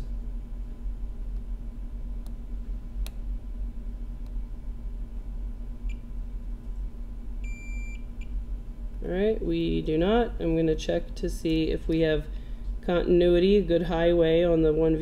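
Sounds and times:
low electrical hum: 0.0s - 15.0s
multimeter beeping: 7.4s - 8.0s.

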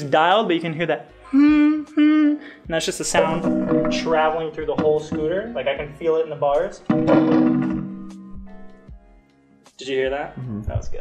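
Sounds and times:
metal frame ringing: 3.2s - 6.0s, 6.7s - 8.8s
scooter deck knock: 3.4s - 5.6s
small knocks: 3.8s - 5.6s.

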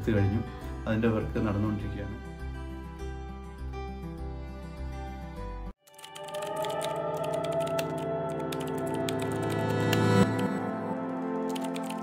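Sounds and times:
soft background music: 0.0s - 12.0s
rapid typing on laptop keyboard: 5.8s - 10.0s, 11.5s - 12.0s.

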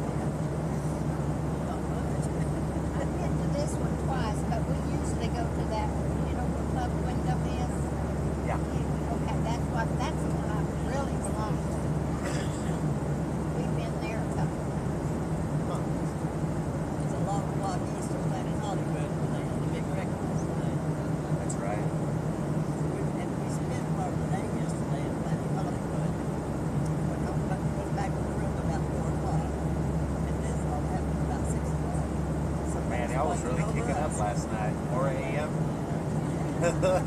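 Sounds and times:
faint murmuring voices: 0.0s - 12.9s, 17.0s - 37.0s
airliner engine and airflow drone: 0.0s - 37.0s
low hum: 0.0s - 37.0s.

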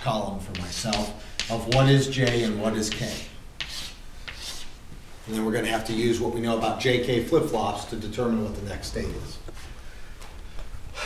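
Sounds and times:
chalk tapping on board: 0.5s - 4.7s
chalk scraping on chalkboard: 0.5s - 4.8s.

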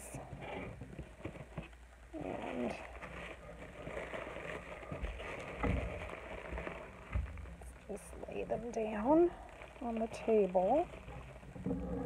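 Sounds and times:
bubble wrap crinkling: 0.3s - 12.0s.

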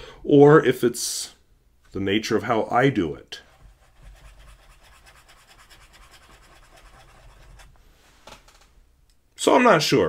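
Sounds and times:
pen nib scratching on paper: 3.6s - 7.7s.

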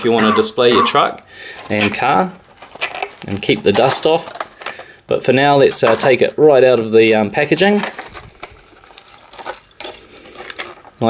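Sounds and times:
plastic packaging crackling: 1.5s - 11.0s.

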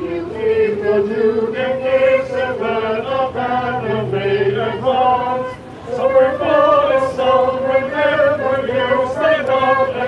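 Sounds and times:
choir singing: 0.0s - 10.0s
wind ensemble playing: 0.0s - 10.0s.

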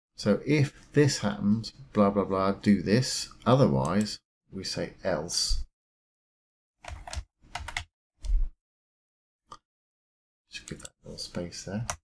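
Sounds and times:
computer keyboard typing: 6.8s - 7.9s.

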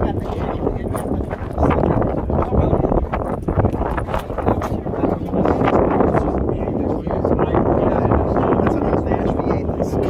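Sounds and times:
people laughing and talking: 0.0s - 10.0s
wind buffeting microphone: 0.0s - 10.0s.

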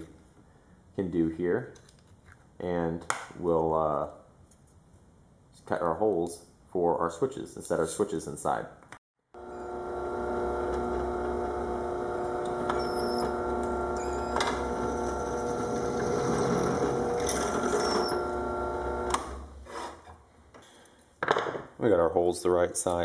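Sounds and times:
drill press running: 9.4s - 19.6s.

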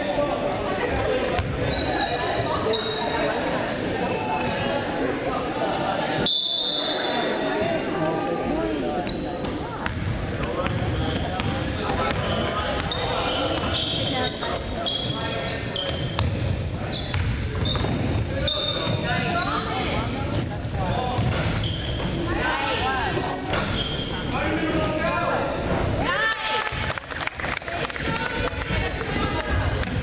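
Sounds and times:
spectators chattering: 0.0s - 30.0s
basketball dribbling: 9.8s - 13.8s, 21.2s - 22.1s
sneaker squeaks on hardwood: 10.6s - 22.4s, 23.1s - 24.3s, 28.7s - 29.3s.

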